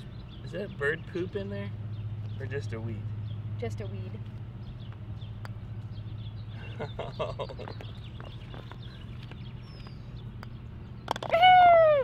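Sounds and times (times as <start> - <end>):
putter striking golf ball: 5.4 - 5.6, 10.4 - 11.4
person laughing: 6.6 - 7.8.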